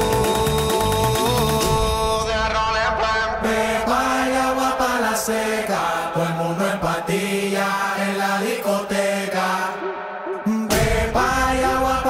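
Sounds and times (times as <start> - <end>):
bass: 0.0 - 3.0
club music with long held notes: 0.0 - 12.0.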